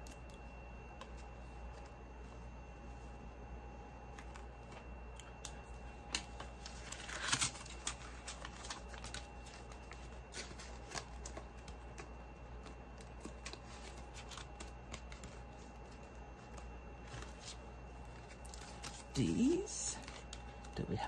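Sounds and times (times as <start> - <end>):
plastic and paper rustling: 4.1 - 20.9.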